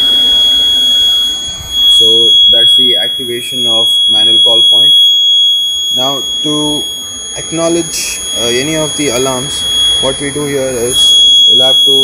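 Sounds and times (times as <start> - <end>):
fire alarm steady tone: 0.0 - 12.0.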